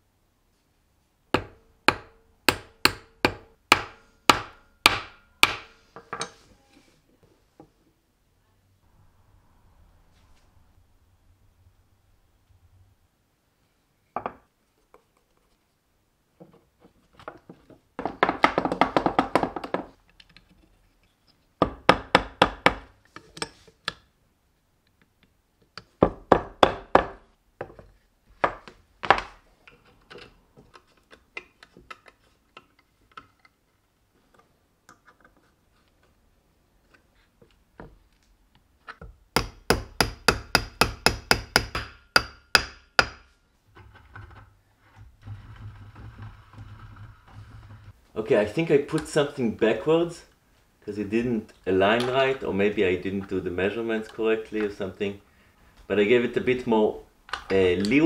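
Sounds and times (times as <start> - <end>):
hammer tapping on wood: 39.4 - 43.3.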